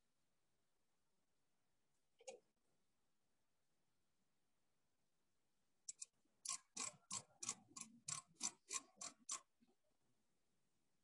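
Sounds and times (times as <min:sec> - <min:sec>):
micrometer ratchet clicking: 0:05.9 - 0:09.5.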